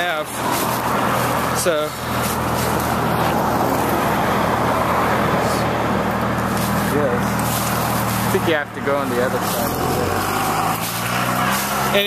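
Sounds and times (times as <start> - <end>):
road traffic rush: 0.0 - 12.0.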